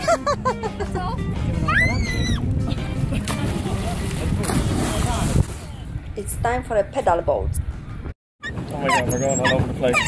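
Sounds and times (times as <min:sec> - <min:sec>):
wind rumbling on microphone: 0:01.2 - 0:10.0
splash into water: 0:03.1 - 0:05.8.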